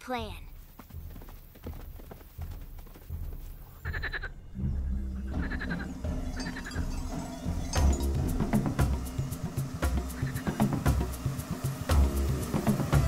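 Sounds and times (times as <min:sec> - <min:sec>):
low background music: 0:00.0 - 0:13.0
cartoon running footfalls: 0:00.5 - 0:04.3
short bleat-like calls: 0:03.8 - 0:04.3.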